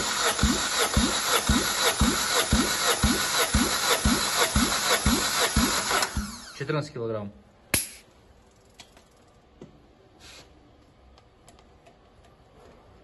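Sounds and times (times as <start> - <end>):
starter motor cranking engine: 0.0 - 6.6.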